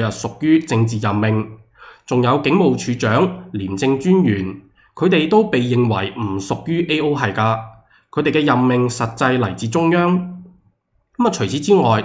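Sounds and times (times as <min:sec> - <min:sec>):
man speaking: 0:00.0 - 0:12.0
intake of breath: 0:01.7 - 0:02.1, 0:04.7 - 0:05.0, 0:07.8 - 0:08.1.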